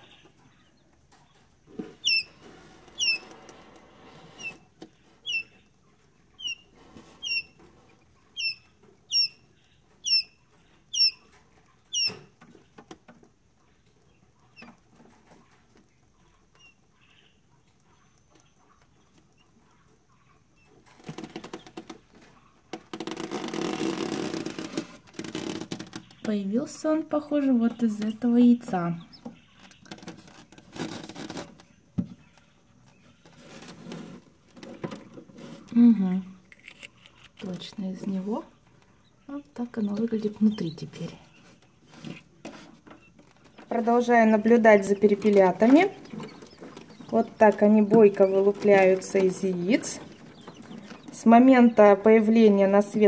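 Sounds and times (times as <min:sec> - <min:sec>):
quail chick peeping: 0:00.0 - 0:53.0.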